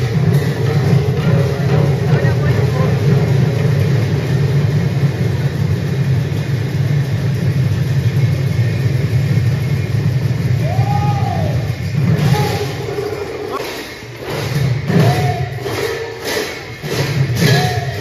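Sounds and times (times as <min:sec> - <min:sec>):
many barrel drums rumbling: 0:00.0 - 0:18.0
voices: 0:00.3 - 0:03.6.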